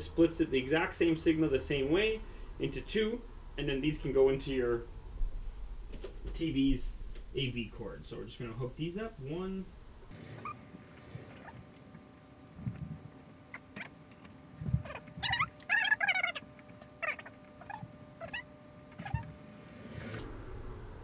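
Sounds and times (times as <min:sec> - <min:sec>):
high wavering squeaks: 0:10.4 - 0:10.6, 0:14.6 - 0:20.2.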